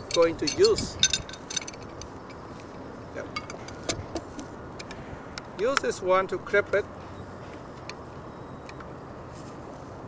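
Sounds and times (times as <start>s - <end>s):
pipe wrench clinking on metal pipe: 0.0s - 2.4s.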